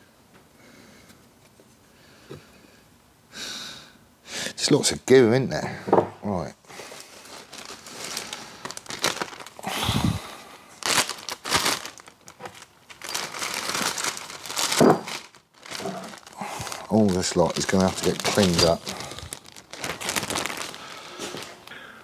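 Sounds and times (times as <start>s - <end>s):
plastic bag crinkling: 6.7s - 21.9s.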